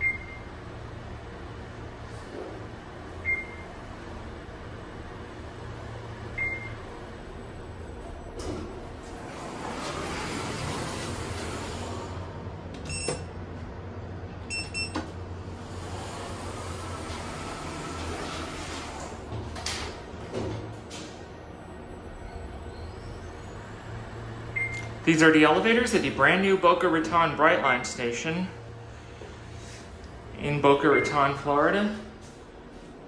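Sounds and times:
elevator doors sliding: 0:00.0 - 0:33.0.

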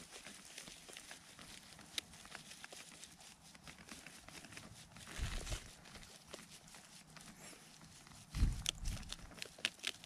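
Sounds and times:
faint rustles in grass: 0:00.0 - 0:10.0.

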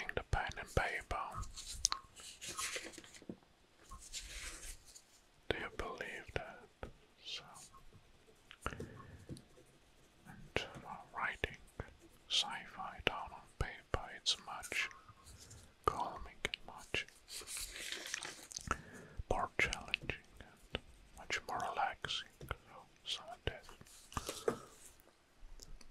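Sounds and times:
man whispering: 0:00.0 - 0:01.5, 0:05.5 - 0:07.8, 0:10.0 - 0:15.0, 0:15.8 - 0:17.2, 0:18.5 - 0:24.9.

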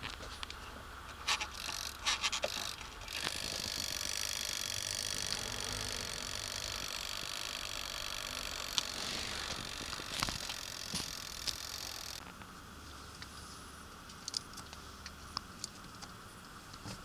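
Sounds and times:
rotary dial clicking: 0:01.4 - 0:12.2
steady whir: 0:01.4 - 0:12.4.

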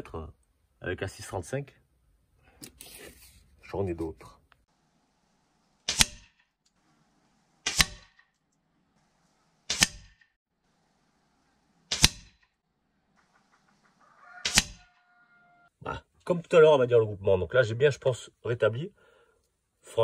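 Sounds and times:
air rifle shots: 0:05.8 - 0:06.4, 0:07.6 - 0:08.2, 0:09.7 - 0:10.2, 0:11.9 - 0:12.4, 0:14.4 - 0:14.9
pellets striking paper target: 0:05.8 - 0:06.5, 0:07.6 - 0:08.3, 0:09.6 - 0:10.4, 0:11.9 - 0:12.6, 0:14.4 - 0:14.9.

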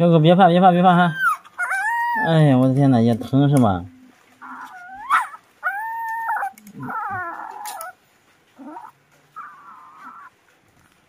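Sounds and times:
puppy whimpering: 0:00.7 - 0:02.7, 0:04.4 - 0:10.4.

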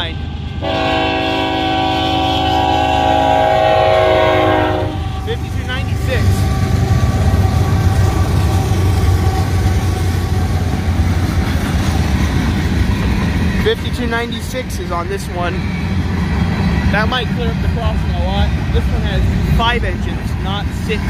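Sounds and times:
diesel locomotives rumbling past: 0:00.0 - 0:21.0
locomotive air horn: 0:00.6 - 0:05.3.

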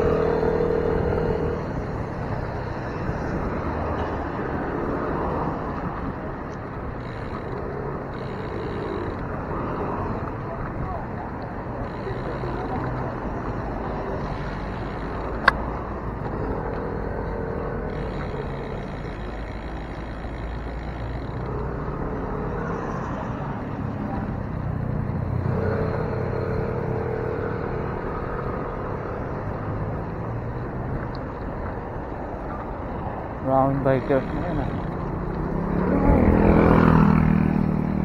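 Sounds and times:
cars passing on road: 0:00.0 - 0:38.0.

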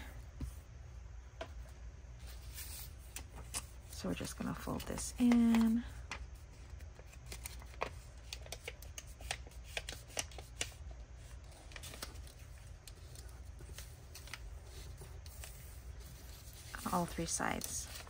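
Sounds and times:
paper crinkling and rustling: 0:02.2 - 0:18.0.

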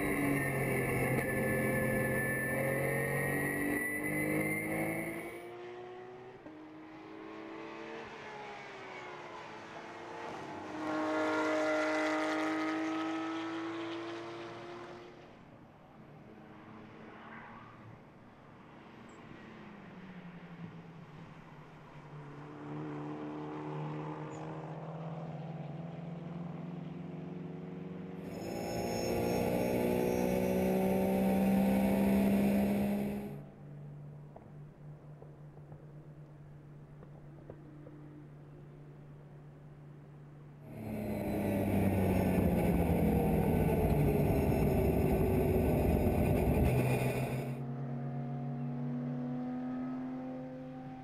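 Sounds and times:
race car engines at full throttle: 0:00.0 - 0:36.0, 0:40.4 - 0:51.0.

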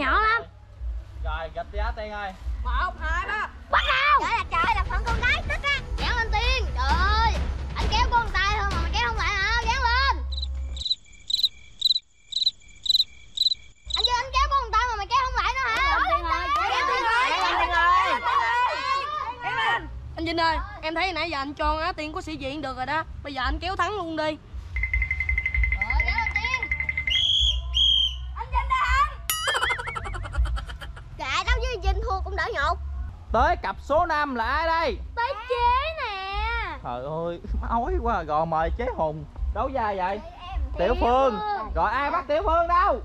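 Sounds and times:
crickets chirping: 0:10.3 - 0:14.4, 0:24.8 - 0:28.2
children's voices: 0:14.0 - 0:21.1
short whistle blasts: 0:26.7 - 0:28.4
referee's whistle trilling: 0:26.8 - 0:28.3.

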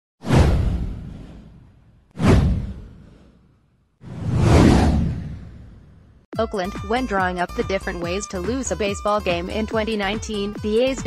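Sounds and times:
whoosh: 0:00.2 - 0:06.3.

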